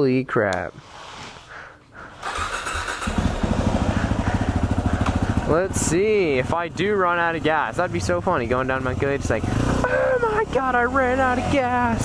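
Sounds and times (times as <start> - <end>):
motorcycle engine idling: 2.1 - 12.0
motorcycle engine cranking: 2.2 - 5.5.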